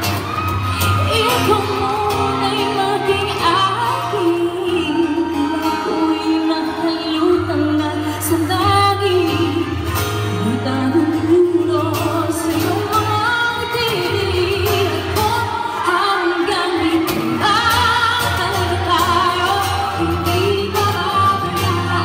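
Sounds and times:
woman singing into microphone: 0:00.0 - 0:22.0.

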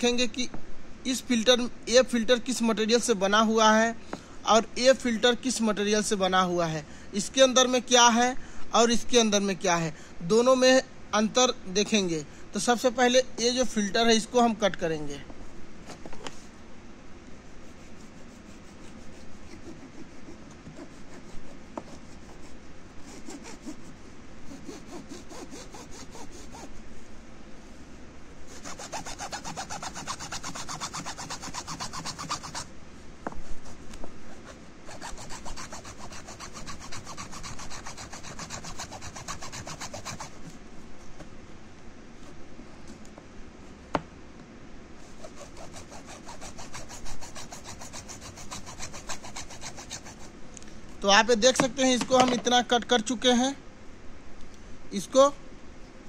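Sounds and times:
hacksaw sawing through plastic: 0:17.6 - 0:23.9, 0:24.5 - 0:26.7, 0:28.5 - 0:32.7, 0:34.3 - 0:40.5, 0:45.0 - 0:50.3.

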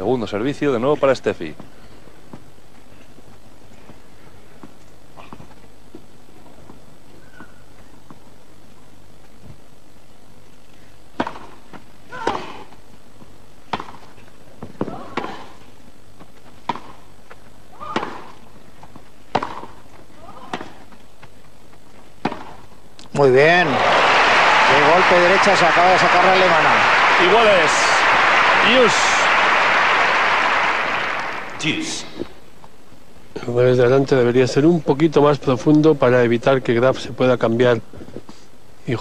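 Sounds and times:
racket striking tennis ball: 0:13.7 - 0:14.0, 0:19.3 - 0:19.8.

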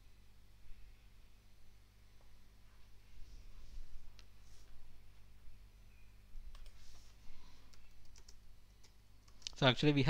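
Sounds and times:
computer mouse and keyboard clicks: 0:06.5 - 0:06.9, 0:07.7 - 0:09.6.

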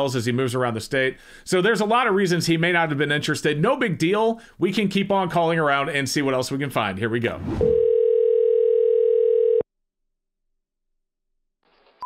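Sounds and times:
telephone dial tone: 0:07.7 - 0:09.6.

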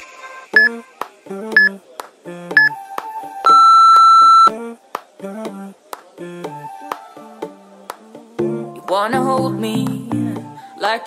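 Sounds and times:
pop music: 0:04.3 - 0:11.0.

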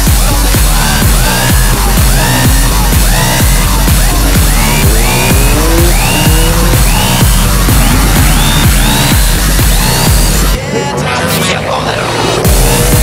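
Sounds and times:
electronic dance music: 0:00.0 - 0:13.0
rising synth sweeps: 0:00.7 - 0:10.6.

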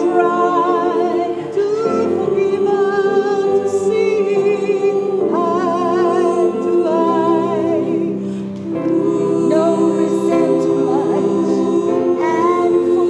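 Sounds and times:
women's choir singing: 0:00.0 - 0:13.0.

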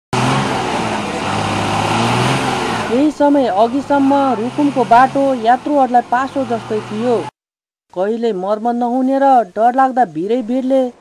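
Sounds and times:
bus engine running loudly: 0:00.2 - 0:07.3.

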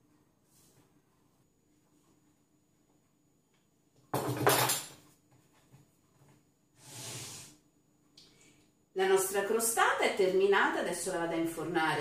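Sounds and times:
soft sliding rub: 0:00.4 - 0:01.0, 0:06.8 - 0:07.6.

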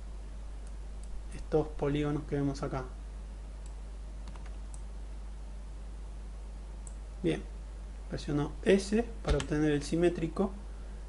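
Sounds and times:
recording hum and hiss: 0:00.0 - 0:11.0
mouse and keyboard clicks: 0:03.6 - 0:04.9.

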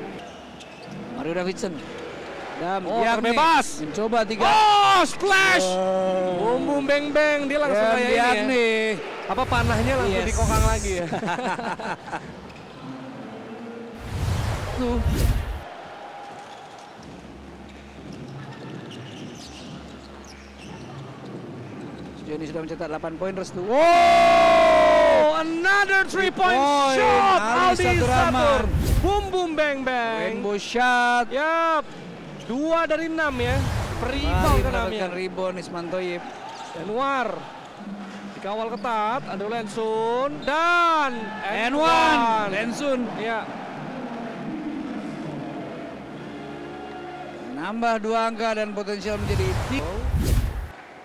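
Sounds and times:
murmur of arena crowd: 0:00.0 - 0:51.0
sneakers squeaking on hardwood: 0:00.2 - 0:01.2, 0:16.3 - 0:22.3.

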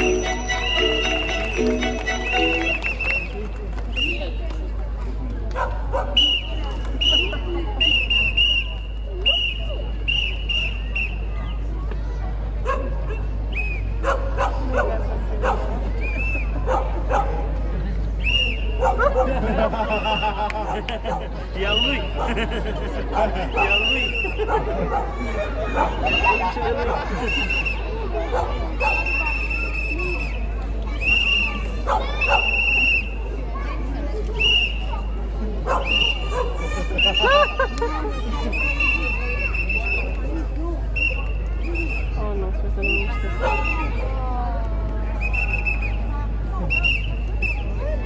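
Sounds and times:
crowd murmur: 0:00.0 - 0:48.0.

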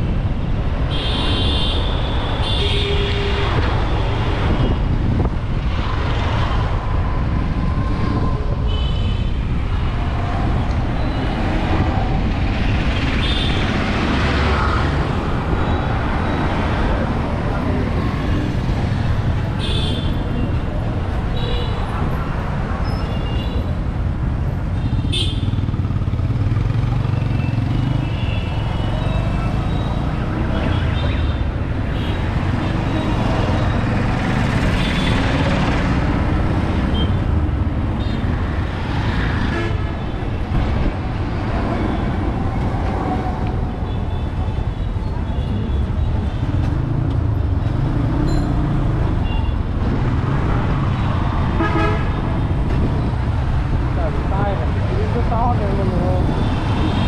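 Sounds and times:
engine and road rumble: 0:00.0 - 0:57.0.

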